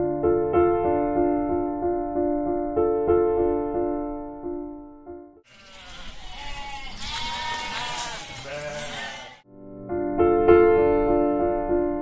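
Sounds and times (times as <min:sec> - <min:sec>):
sheep bleating: 0:05.5 - 0:09.4.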